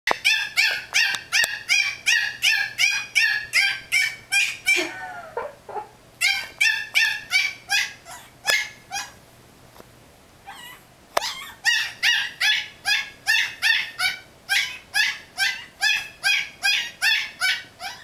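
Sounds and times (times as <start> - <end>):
puppy yipping: 0.1 - 4.9, 5.7 - 9.2, 10.5 - 18.0
puppy whining: 0.1 - 9.2, 10.4 - 18.0.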